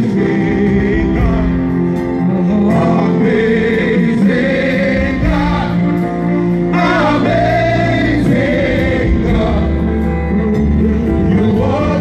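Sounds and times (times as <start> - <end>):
gospel singers: 0.0 - 12.0.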